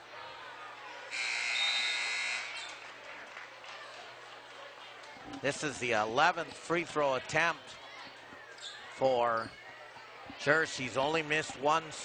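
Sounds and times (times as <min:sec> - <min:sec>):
gymnasium buzzer: 0:01.1 - 0:02.8.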